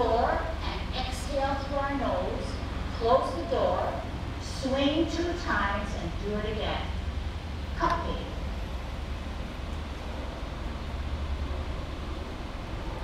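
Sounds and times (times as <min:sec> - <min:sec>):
low background rumble: 0:00.0 - 0:13.0.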